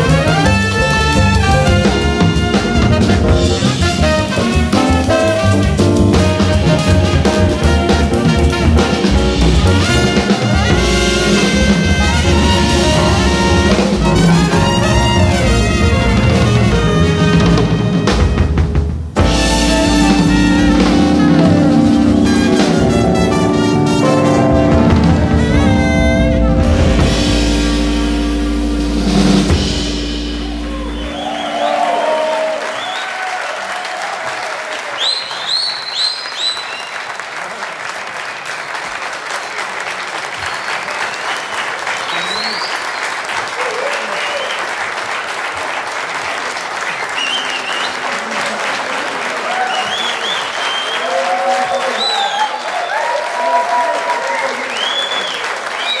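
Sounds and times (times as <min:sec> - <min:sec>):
audience applauding and cheering: 0:00.0 - 0:56.0
band final held chord: 0:19.2 - 0:31.8.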